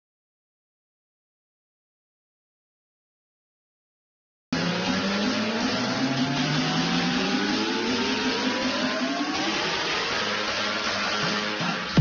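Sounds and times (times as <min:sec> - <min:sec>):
engine whine rising: 0:04.6 - 0:12.0.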